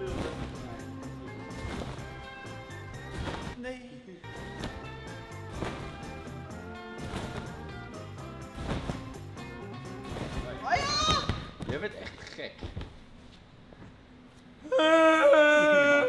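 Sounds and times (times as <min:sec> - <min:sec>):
background music with steady beat: 0:00.0 - 0:03.6, 0:04.2 - 0:11.4.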